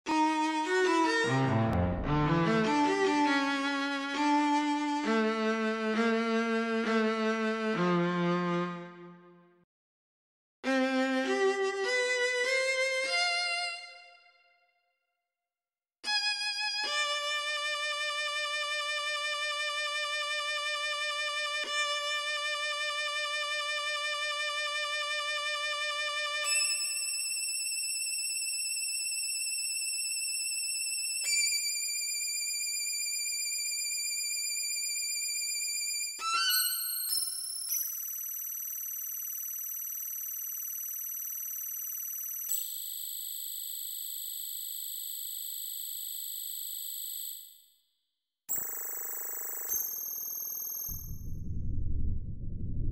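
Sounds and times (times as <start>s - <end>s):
solo violin playing: 0.1s - 9.2s.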